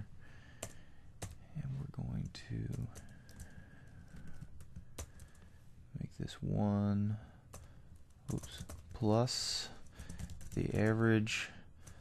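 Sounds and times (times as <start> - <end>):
computer keyboard keystrokes: 0.6 - 1.4, 2.6 - 5.4, 7.5 - 7.7, 8.3 - 9.0, 9.8 - 11.0.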